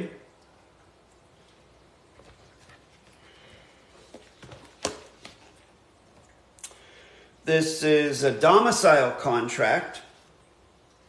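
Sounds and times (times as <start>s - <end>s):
paper rustling and tapping: 4.0s - 6.2s.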